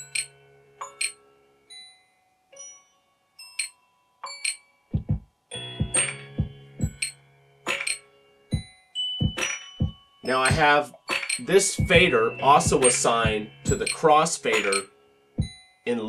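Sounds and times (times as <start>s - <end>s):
deep kick drum pattern: 5.0s - 5.2s, 5.8s - 7.0s, 8.5s - 10.7s, 11.8s - 14.0s.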